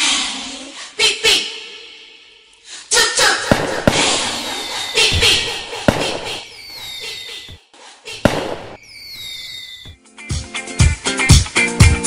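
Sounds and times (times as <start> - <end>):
falling firework whistles: 3.5 - 7.6, 8.2 - 10.0
firework bangs: 3.5 - 7.6, 8.2 - 10.0
fireworks crackling: 3.5 - 7.6, 8.2 - 9.9.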